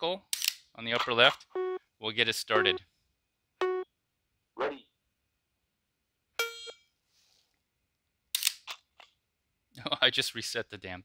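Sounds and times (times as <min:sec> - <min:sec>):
electronic start beep: 0:01.6 - 0:01.8, 0:02.6 - 0:02.8, 0:03.6 - 0:03.8.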